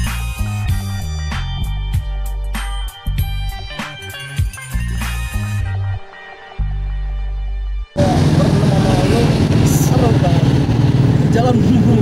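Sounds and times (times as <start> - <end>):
motorcycle engine idling: 8.0 - 12.0.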